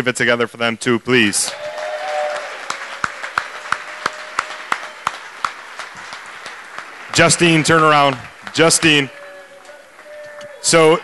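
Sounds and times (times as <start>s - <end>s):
close hand claps: 1.5s - 10.7s
audience applauding: 1.5s - 11.0s.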